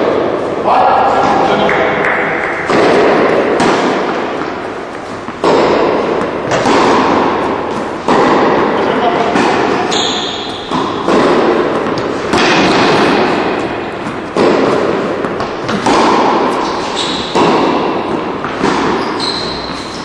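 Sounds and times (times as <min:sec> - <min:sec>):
racket striking tennis ball: 0:01.1 - 0:20.0.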